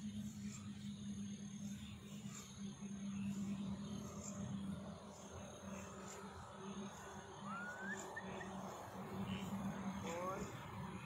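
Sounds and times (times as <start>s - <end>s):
rising whistled call: 7.4s - 8.6s.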